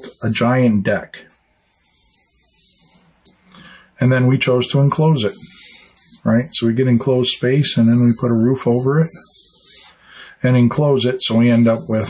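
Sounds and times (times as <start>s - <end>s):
man breathing in: 3.4s - 4.0s, 9.9s - 10.4s.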